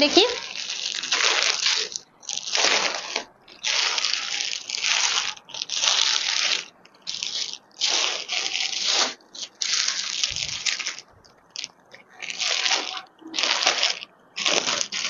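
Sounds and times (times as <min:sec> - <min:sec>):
clothing rustling and crinkling: 0:00.0 - 0:15.0.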